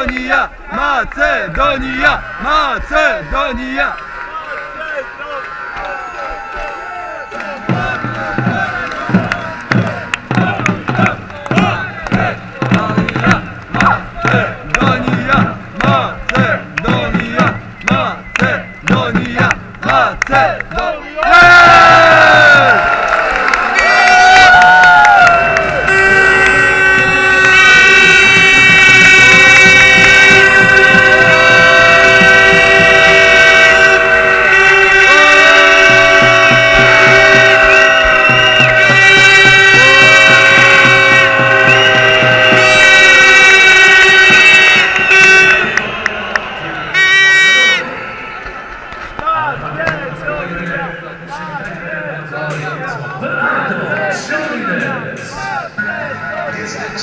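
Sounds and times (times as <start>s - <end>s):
crowd chanting: 0.0s - 57.0s.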